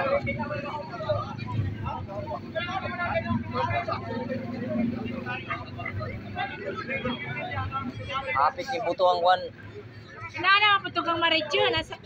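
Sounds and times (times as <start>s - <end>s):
people talking: 0.0s - 12.0s
vehicle engine running: 0.0s - 12.0s.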